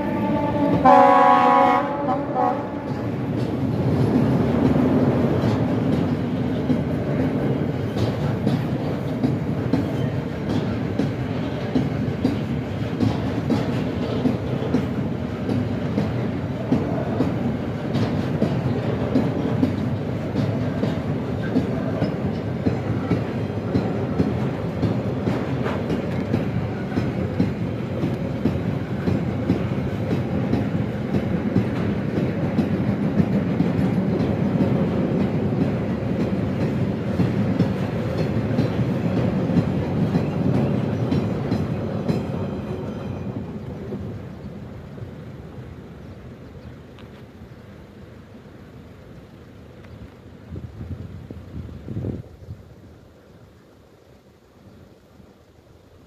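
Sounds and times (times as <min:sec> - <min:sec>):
freight train wheels clattering: 0:00.0 - 0:47.4.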